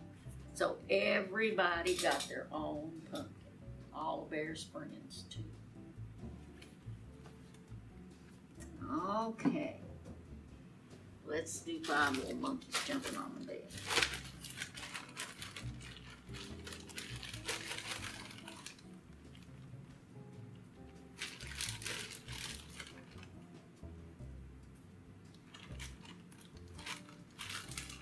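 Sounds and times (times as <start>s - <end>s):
faint music: 0.0s - 28.0s
plastic bag crinkling: 11.7s - 19.6s, 21.1s - 23.3s, 25.4s - 28.0s.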